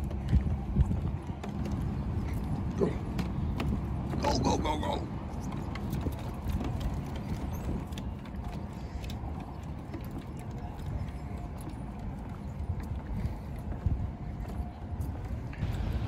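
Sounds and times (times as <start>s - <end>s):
dog paws on wooden planks: 0.0s - 16.0s
footsteps on wooden planks: 0.0s - 16.0s
wind rumble on microphone: 0.0s - 16.0s.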